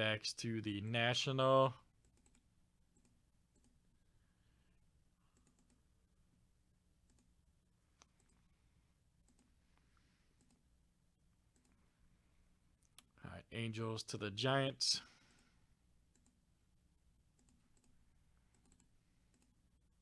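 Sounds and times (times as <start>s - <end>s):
faint computer mouse clicks: 5.4s - 5.8s.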